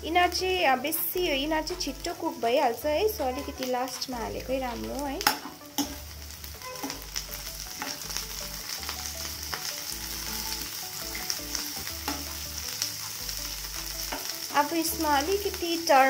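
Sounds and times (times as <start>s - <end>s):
vegetables sizzling in a pan: 0.0s - 16.0s
steel spoon scraping a pan: 6.6s - 7.1s.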